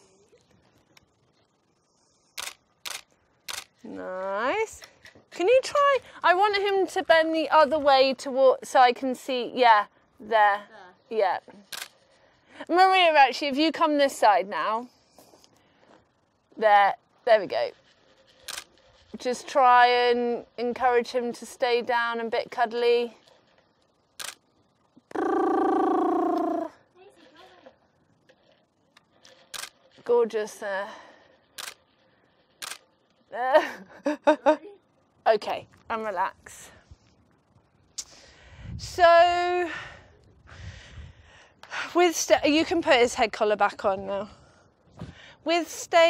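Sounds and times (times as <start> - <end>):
camera shutter clicks: 2.4 - 3.8, 11.6 - 12.0, 18.3 - 18.8, 24.2 - 24.4, 29.2 - 29.8, 31.6 - 31.8, 32.6 - 32.9.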